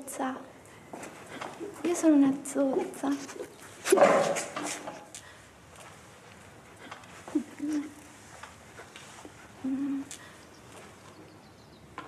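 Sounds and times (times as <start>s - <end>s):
woman speaking: 1.6s - 4.1s, 7.3s - 8.0s.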